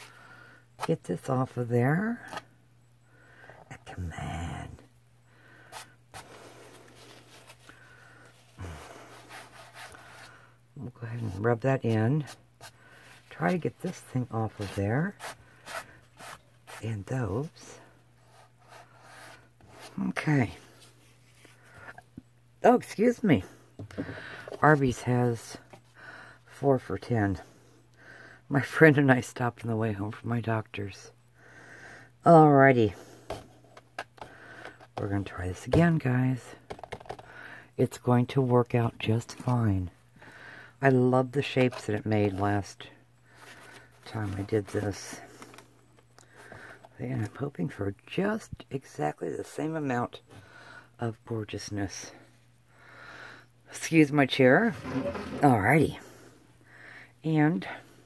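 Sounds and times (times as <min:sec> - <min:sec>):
low steady hum: 0:00.0 - 0:58.0.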